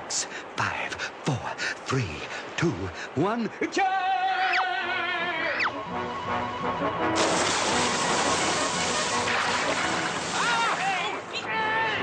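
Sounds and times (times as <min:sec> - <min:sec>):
background music: 0:04.8 - 0:11.2
cartoon water splash: 0:07.2 - 0:11.0.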